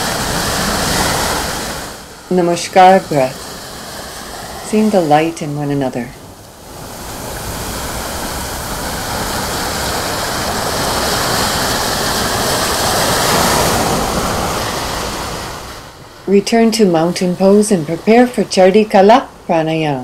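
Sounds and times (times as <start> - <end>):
ocean surf on sandy beach: 0.0 - 20.0.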